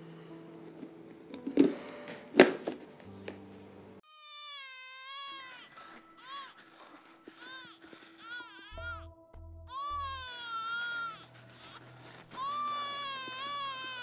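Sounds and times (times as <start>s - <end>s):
soft background music: 0.0s - 14.0s
infant crying: 4.0s - 9.1s, 9.7s - 14.0s.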